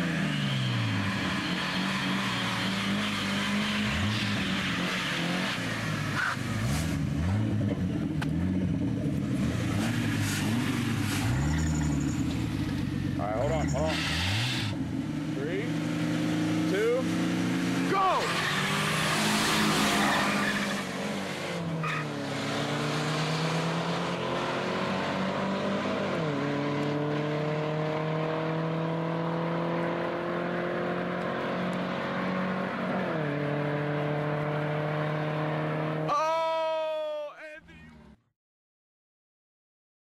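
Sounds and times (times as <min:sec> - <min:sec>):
car engines accelerating at full throttle: 0:00.0 - 0:36.2.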